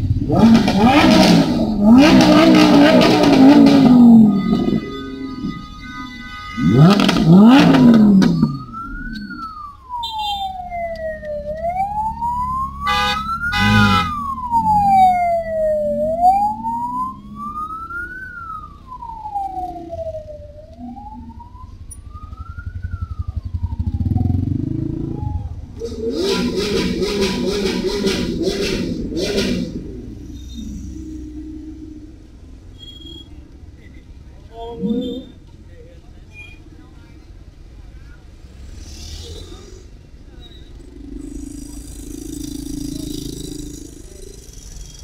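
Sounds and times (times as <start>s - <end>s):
wailing siren: 0.0s - 32.6s, 40.7s - 44.5s
car engines running: 0.0s - 32.8s, 33.4s - 45.0s
harsh pulsing honk-like tone: 0.1s - 8.7s, 12.6s - 15.1s, 25.8s - 31.4s, 34.6s - 35.4s.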